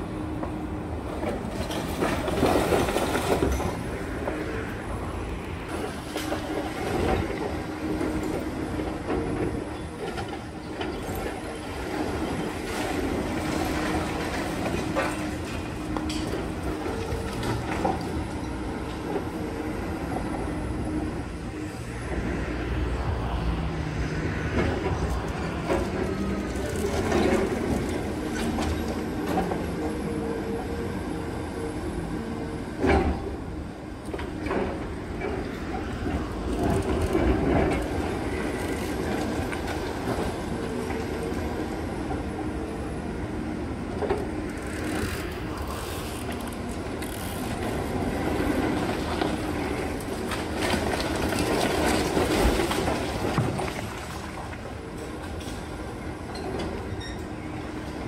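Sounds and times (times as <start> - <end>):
excavator engine running: 0.0 - 58.0.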